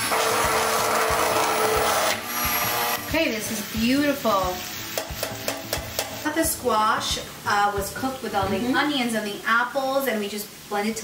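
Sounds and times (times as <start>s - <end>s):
immersion blender motor whine: 0.0s - 3.2s.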